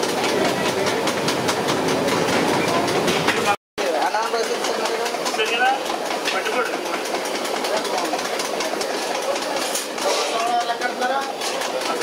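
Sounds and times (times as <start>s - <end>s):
clatter and clicks: 0.0s - 12.0s.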